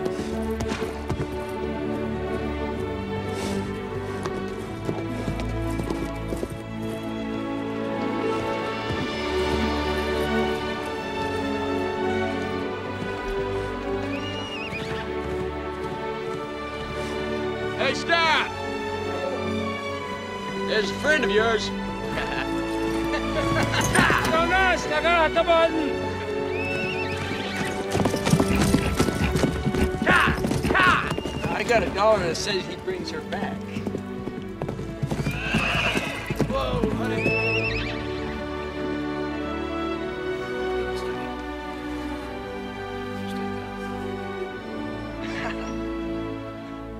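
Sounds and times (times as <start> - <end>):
film score music with held notes: 0.0 - 46.9
horse hooves clip-clopping: 0.0 - 46.9
horse whinnying: 13.4 - 15.3, 26.2 - 31.8, 35.0 - 39.0.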